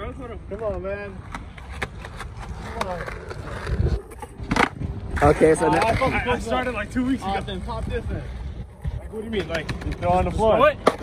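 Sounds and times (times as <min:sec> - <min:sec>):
skateboard wheels rumbling: 0:00.0 - 0:11.0
skateboard tail clack: 0:01.3 - 0:06.7, 0:09.4 - 0:11.0.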